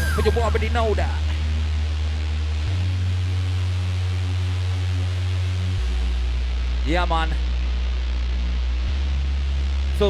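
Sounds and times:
deep bass note: 0.0 - 10.0
faint sustained synth tones: 0.0 - 10.0.

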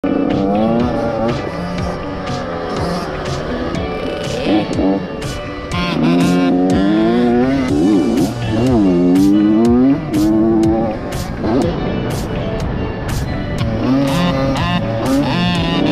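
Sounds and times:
dirt bike engines revving: 0.0 - 15.9.

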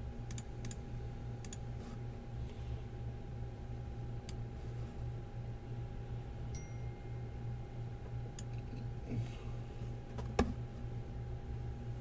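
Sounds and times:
low electrical hum: 0.0 - 12.0
computer mouse clicks: 0.3 - 0.8, 1.4 - 1.6
faint high steady tone: 6.4 - 8.9.

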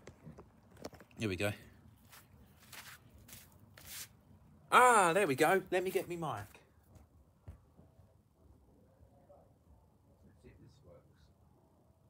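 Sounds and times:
soft handling rustles: 1.9 - 4.1.

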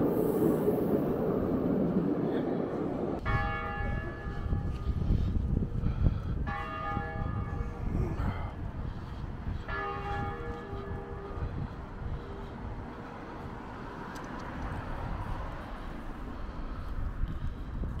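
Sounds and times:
tram rumbling on rails: 0.0 - 18.0
wind and city noise: 0.0 - 18.0.

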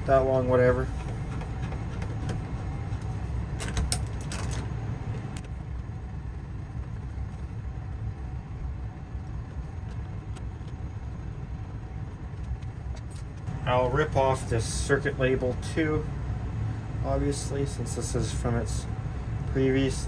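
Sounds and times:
low machine rumble: 0.0 - 20.0.

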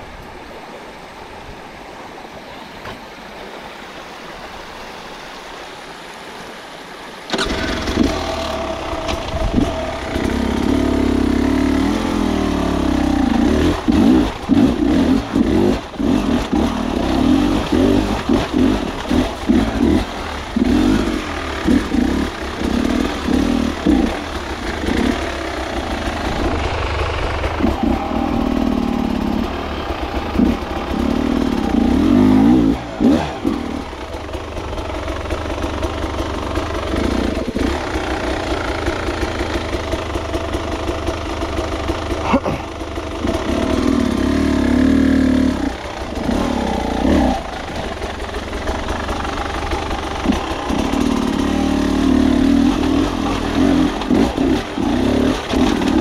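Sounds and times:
motorcycle engine revving: 7.3 - 56.0.

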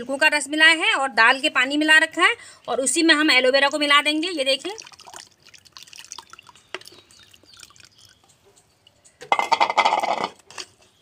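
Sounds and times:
water dripping and trickling: 2.8 - 9.2
liquid pouring into strainer: 4.7 - 8.2.

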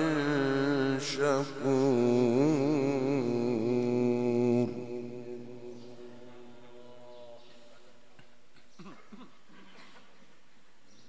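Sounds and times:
man reciting melodically: 0.0 - 8.2.

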